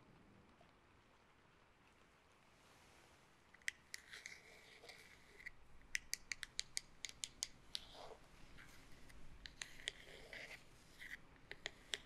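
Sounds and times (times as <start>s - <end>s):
hairbrush clicking and scratching: 3.7s - 12.0s.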